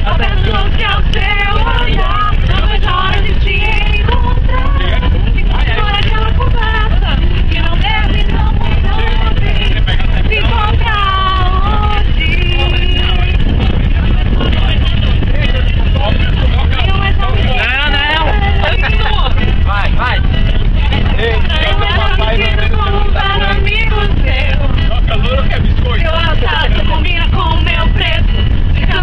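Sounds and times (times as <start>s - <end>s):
bus engine and road noise: 0.0s - 29.0s
young voices shouting and singing: 15.6s - 29.0s.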